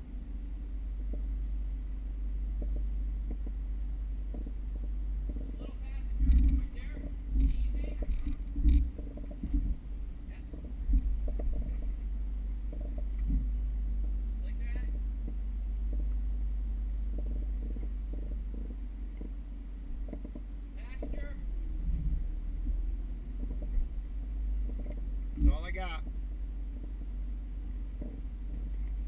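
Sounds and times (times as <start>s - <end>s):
engine and drivetrain rumble: 0.0s - 29.0s
heavy thumps and knocks: 2.6s - 3.6s, 4.3s - 5.6s, 6.2s - 12.0s.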